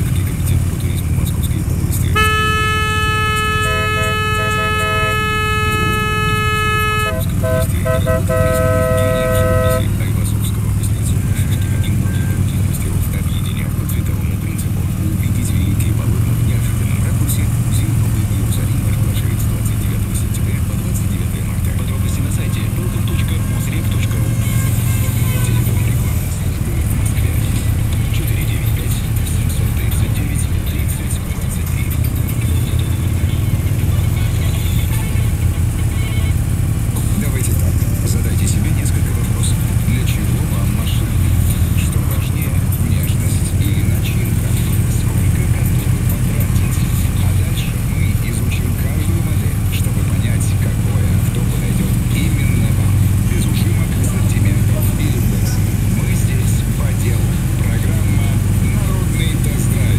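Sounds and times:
motorcycle horns: 0.0s - 59.8s
motorcycle engine droning: 0.0s - 59.9s.

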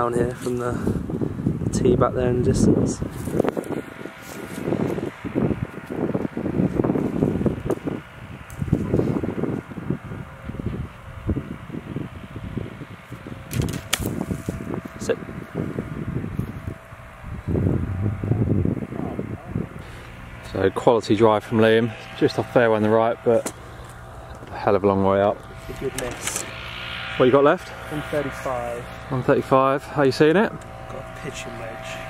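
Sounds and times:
wind noise: 0.0s - 32.0s
low voices: 17.6s - 26.5s.

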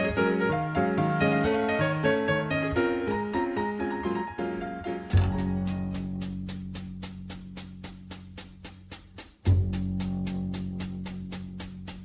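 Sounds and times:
steady cymbal beat: 5.2s - 12.0s.

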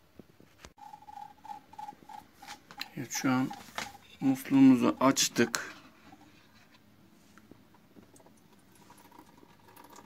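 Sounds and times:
thin water stream into jug: 0.8s - 6.7s, 7.7s - 10.0s.

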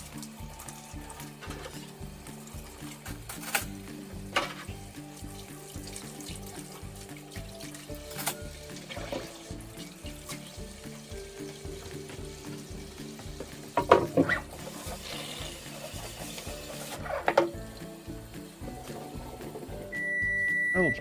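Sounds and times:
background music with held notes: 0.0s - 21.0s
dishes clattering: 4.3s - 4.8s, 13.8s - 14.3s
tap running into steel sink: 13.4s - 14.4s.

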